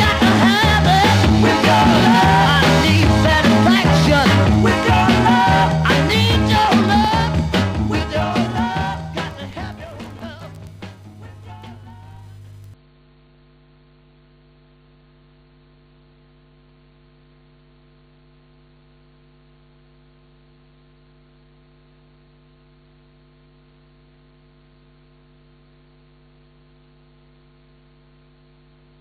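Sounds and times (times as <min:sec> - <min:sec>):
faint mains hum: 0:00.0 - 0:29.0
light hiss: 0:12.0 - 0:12.8.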